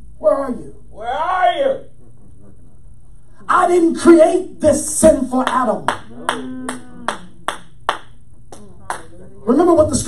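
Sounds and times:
single hand claps: 5.4 - 9.1.

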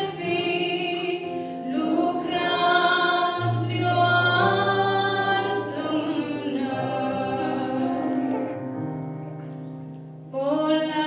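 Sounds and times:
woman singing through speakers: 0.0 - 8.4, 10.4 - 11.0.

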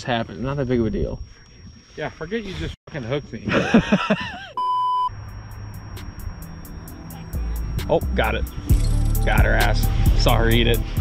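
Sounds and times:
laughter: 3.4 - 4.6
electronic censor bleep: 4.6 - 9.3
background music with ticking beat: 5.4 - 11.0.

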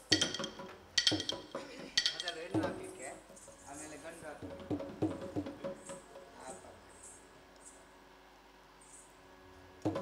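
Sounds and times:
hand cymbals clashing: 0.0 - 4.0.

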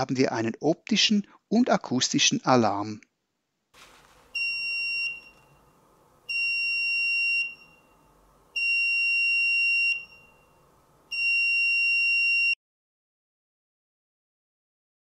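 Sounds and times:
high-pitched electronic buzzer beeps: 6.3 - 12.6.

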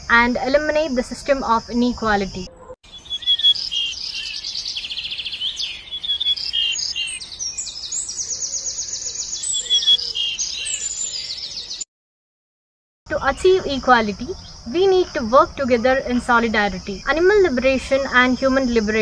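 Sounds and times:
songbirds singing: 1.5 - 11.9, 13.6 - 19.0.

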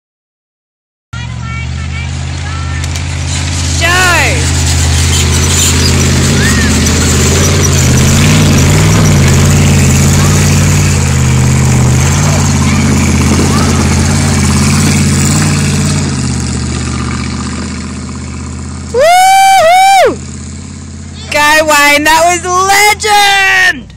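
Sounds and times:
engine working hard: 1.2 - 23.9
person shouting: 3.8 - 4.5, 19.0 - 20.2
loud whoop: 18.9 - 20.2.

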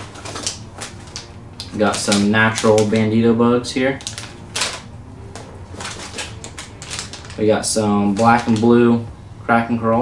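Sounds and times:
plastic packaging crinkling: 3.9 - 8.7.

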